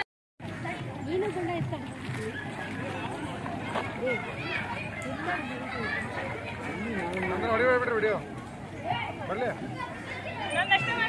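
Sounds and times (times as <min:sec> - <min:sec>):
children's voices: 0:00.4 - 0:07.6, 0:08.3 - 0:11.0
people talking: 0:00.5 - 0:11.0.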